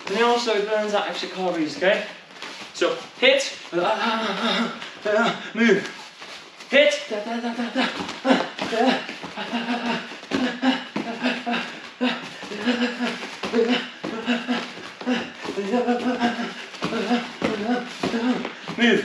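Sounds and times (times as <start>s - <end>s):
person grunting and exhaling: 3.8s - 6.0s, 7.1s - 19.0s.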